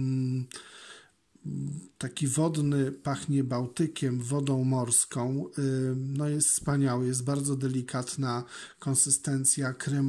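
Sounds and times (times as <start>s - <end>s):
man speaking: 0.0s - 0.6s, 1.4s - 10.0s
soft intake of breath: 0.5s - 1.2s, 8.4s - 8.8s.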